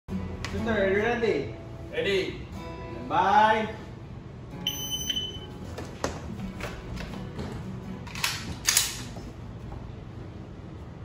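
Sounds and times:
shot timer beep: 0:04.6 - 0:05.5.

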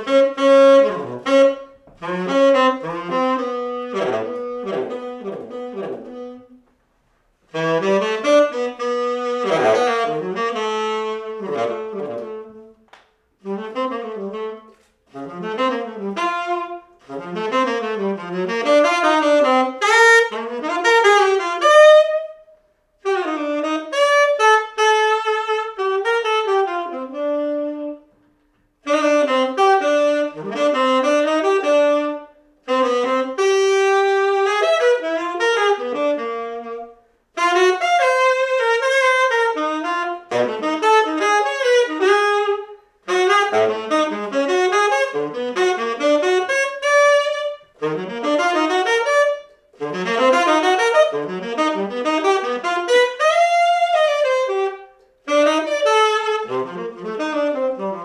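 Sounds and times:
tenor saxophone jazz improvisation: 0:00.0 - 0:58.0.

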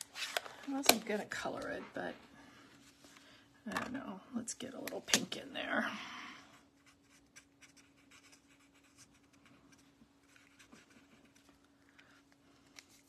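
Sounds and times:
faint steady hum: 0:00.0 - 0:13.0
marker scratching on cardstock: 0:06.8 - 0:11.3.

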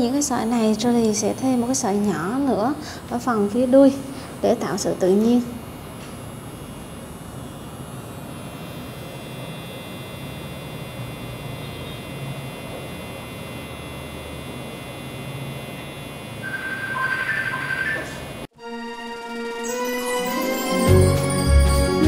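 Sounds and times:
tattoo machine humming: 0:00.0 - 0:18.5
music: 0:18.6 - 0:22.0.

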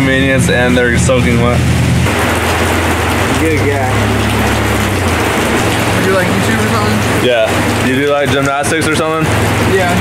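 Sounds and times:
heavy rain: 0:00.0 - 0:10.0
low rumble: 0:00.0 - 0:10.0.

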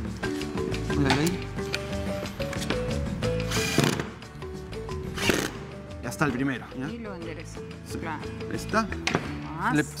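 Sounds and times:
background music with held notes: 0:00.0 - 0:10.0
cordless drill driving screw into wood: 0:03.4 - 0:04.2, 0:05.2 - 0:05.6.

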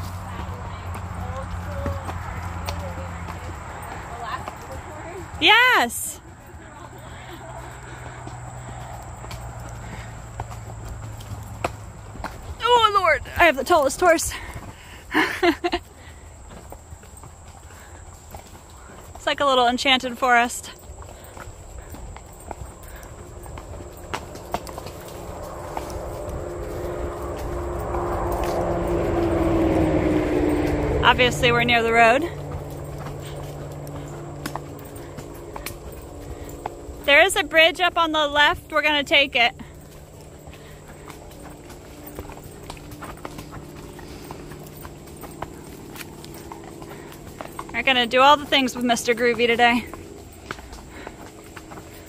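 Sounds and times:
hoof clops on dirt: 0:00.0 - 0:52.0
motor vehicle approaching: 0:00.0 - 0:52.0.

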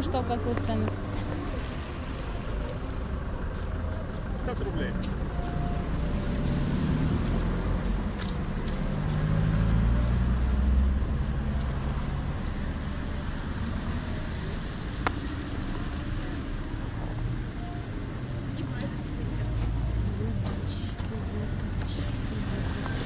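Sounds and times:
vehicle engine rumbling: 0:00.0 - 0:23.0.

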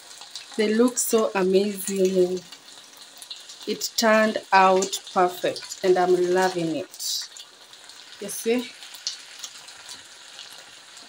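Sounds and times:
chips sizzling in a frying pan: 0:00.0 - 0:11.0.

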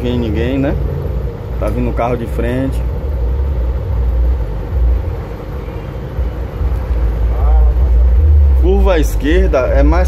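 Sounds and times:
bus engine rumbling: 0:00.0 - 0:10.0.

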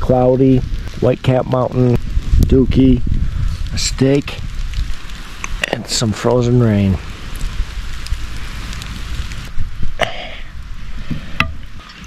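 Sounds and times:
frozen rain hissing: 0:00.0 - 0:12.0
wind rumbling on microphone: 0:00.0 - 0:12.0
person clearing throat: 0:10.0 - 0:10.4.

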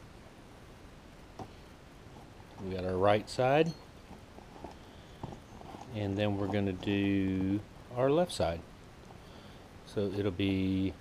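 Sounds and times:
ribbon cables tapping and rustling: 0:04.0 - 0:07.5.

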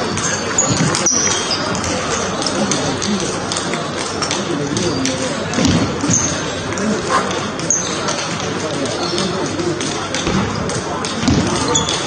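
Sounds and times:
busy hall noise: 0:00.0 - 0:12.0.

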